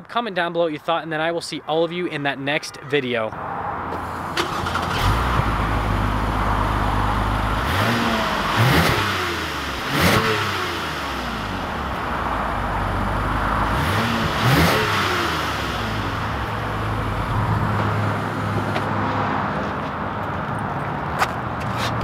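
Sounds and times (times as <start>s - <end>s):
car engine idling and revving: 3.7s - 22.0s.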